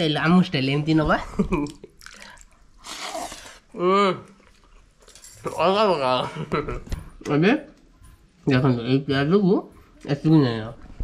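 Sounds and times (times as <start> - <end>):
wet slurp: 2.0 - 3.7.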